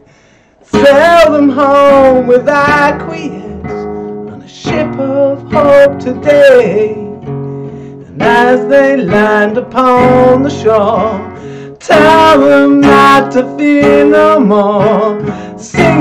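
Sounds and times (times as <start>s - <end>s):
man singing: 0.6s - 7.3s, 7.9s - 16.0s
nylon-string guitar strumming: 0.6s - 16.0s.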